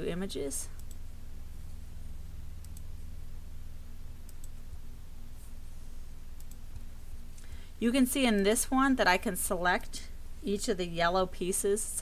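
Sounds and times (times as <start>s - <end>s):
steady low hum: 0.0s - 12.0s
computer mouse clicks: 0.7s - 1.0s, 2.6s - 2.9s, 4.2s - 4.6s, 6.3s - 7.5s.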